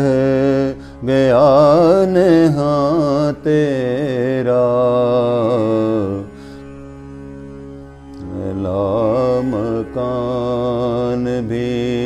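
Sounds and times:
man singing ornamented held notes: 0.0 - 6.4, 8.2 - 12.0.

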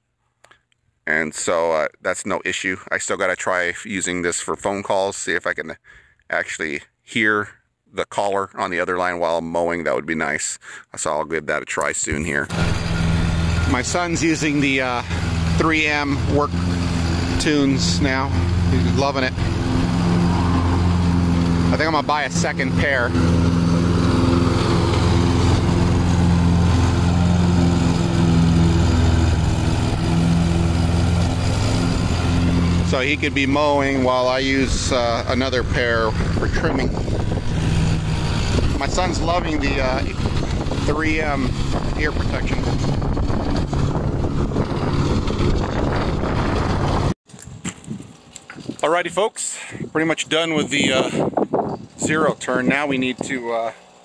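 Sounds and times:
riding mower engine droning: 12.2 - 48.8, 50.6 - 54.0.

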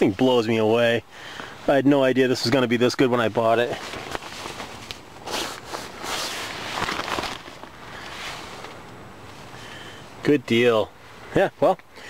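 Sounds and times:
nylon tent fabric rustling: 3.2 - 9.5.

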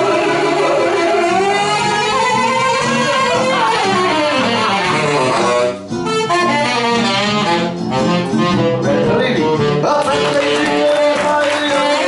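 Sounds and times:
bass: 0.0 - 12.0
plucked guitar: 0.0 - 12.0
tenor saxophone: 0.0 - 12.0.

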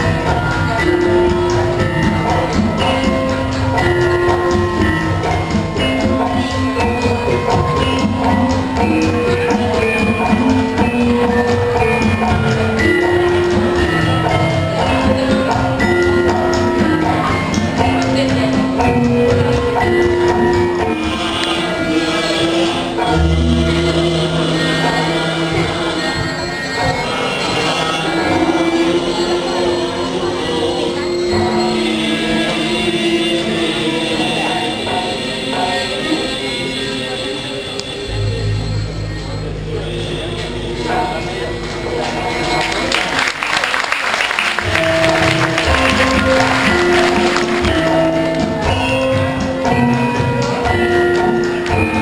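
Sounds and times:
gamelan music: 0.0 - 52.0
voices singing together: 8.0 - 37.6
audience applauding: 42.4 - 48.6.

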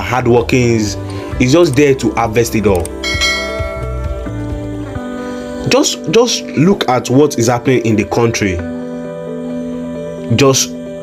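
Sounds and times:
soft background music: 0.0 - 11.0
bell-like notification chime: 3.0 - 4.5.

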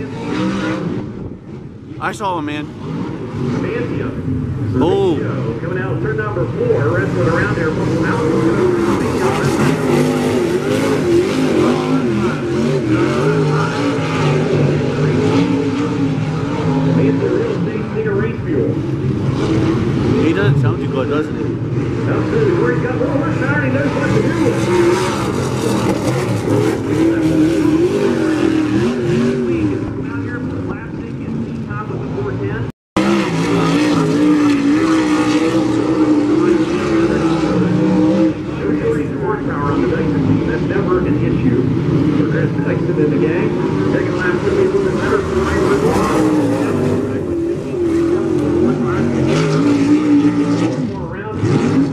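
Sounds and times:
race car engines: 0.0 - 51.9.

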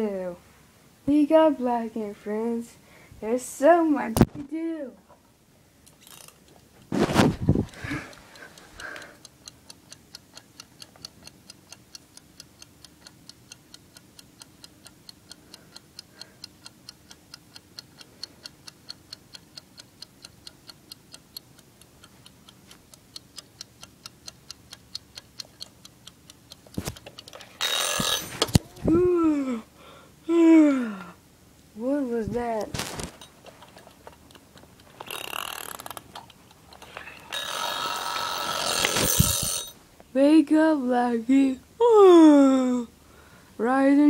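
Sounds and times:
clockwork ticking: 6.0 - 28.8, 33.2 - 39.8.

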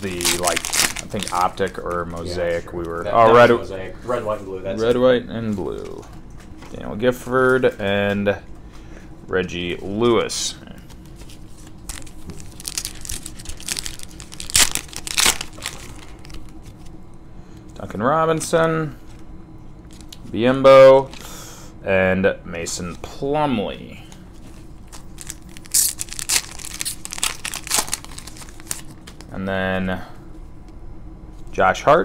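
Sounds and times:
foil wrapper tearing and crinkling: 0.0 - 2.9, 10.9 - 17.0, 24.8 - 29.3.

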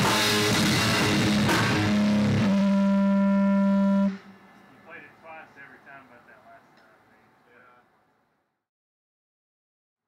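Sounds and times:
guitar and drum kit playing: 0.0 - 4.2.

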